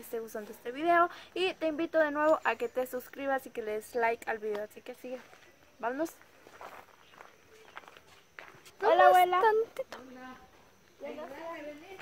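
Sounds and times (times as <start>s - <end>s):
footsteps on dirt path: 4.3s - 12.0s.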